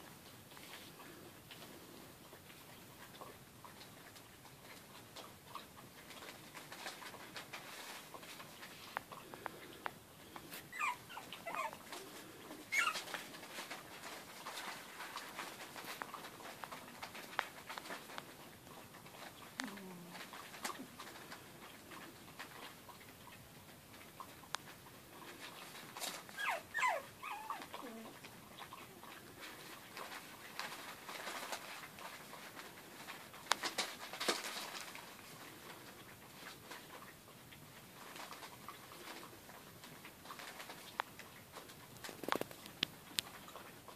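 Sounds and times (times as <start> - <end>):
puppies squeaky cries: 10.7 - 11.8, 12.7 - 13.2, 26.3 - 28.0.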